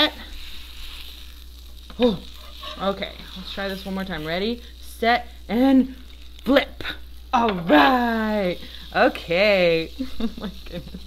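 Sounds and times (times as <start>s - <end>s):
butter sizzling on a griddle: 0.0s - 11.0s.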